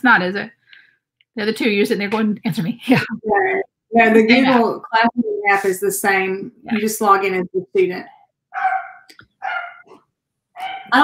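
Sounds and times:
dog barking: 8.5 - 9.9, 10.6 - 11.0.

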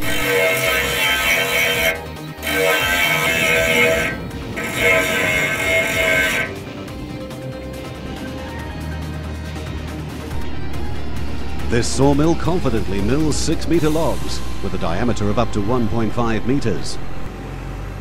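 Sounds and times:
grinder sharpening saw blade: 0.0 - 6.6.

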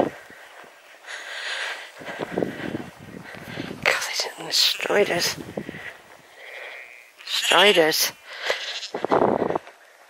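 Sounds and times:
sheep bleating: 4.4 - 5.4, 6.4 - 9.0.

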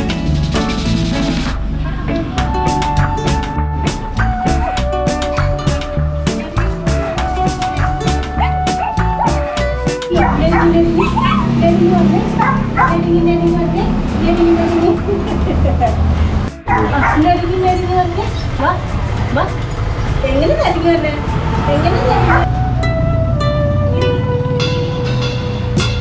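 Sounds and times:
background music: 0.0 - 26.0
dog barking and yipping: 7.7 - 11.6, 12.2 - 13.1, 16.6 - 17.4, 21.3 - 22.5.

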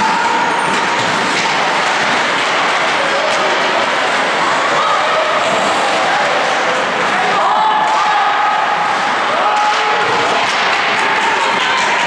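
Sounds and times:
ice rink crowd din: 0.0 - 12.0.

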